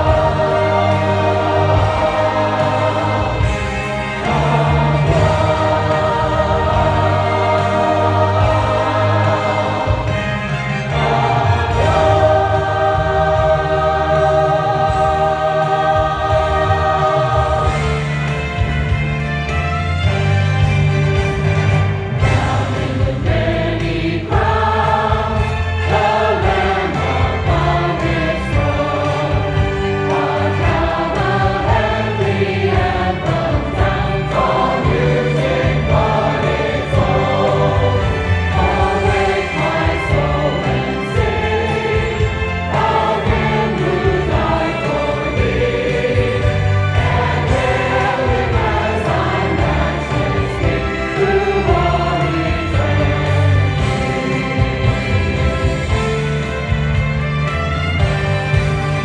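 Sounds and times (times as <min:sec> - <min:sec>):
choir singing gospel: 0:00.0 - 0:59.0
instrumental accompaniment with bass: 0:00.0 - 0:59.0.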